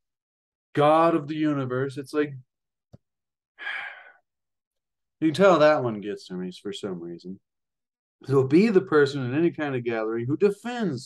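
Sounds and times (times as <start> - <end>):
man sighing: 3.6 - 4.2.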